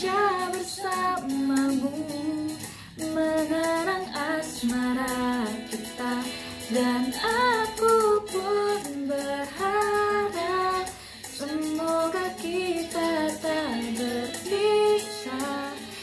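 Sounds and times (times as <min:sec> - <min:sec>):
young woman singing: 0:00.0 - 0:16.0.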